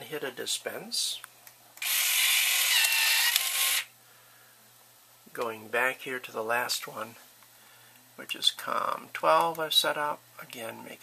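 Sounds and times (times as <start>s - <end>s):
card dispenser motor whir: 1.8s - 3.9s.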